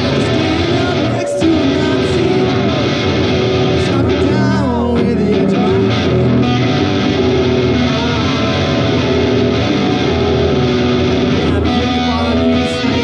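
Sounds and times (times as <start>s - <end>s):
electric guitar with effects: 0.0s - 13.0s.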